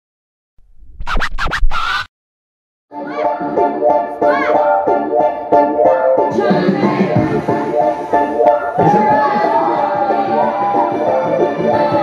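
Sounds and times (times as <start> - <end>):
record scratching: 0.8 - 2.1.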